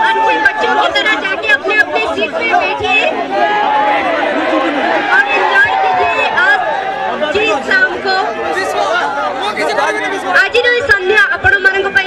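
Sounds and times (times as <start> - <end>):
woman speaking through microphone: 0.0 - 3.2, 5.0 - 8.4, 10.2 - 12.0.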